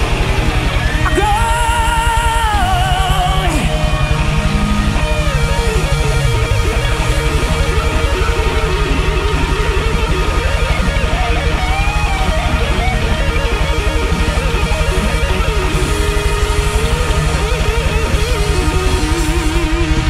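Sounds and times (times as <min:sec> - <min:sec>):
bass guitar: 0:00.0 - 0:20.0
electric guitar lead: 0:00.0 - 0:20.0.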